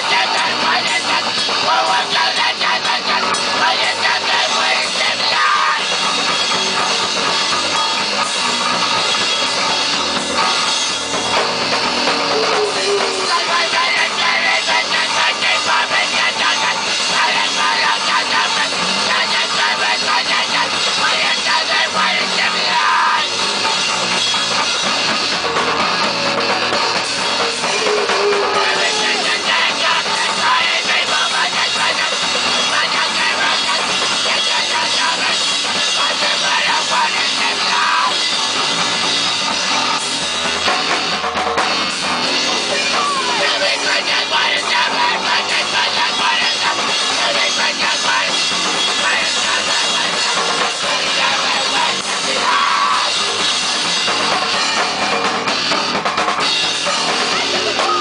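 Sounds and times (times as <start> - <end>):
distorted electric guitar: 0.0 - 58.0
drum kit playing hard: 0.0 - 58.0.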